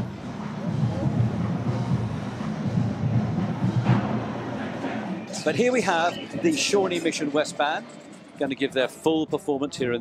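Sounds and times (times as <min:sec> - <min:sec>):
murmur of street crowd: 0:00.0 - 0:10.0.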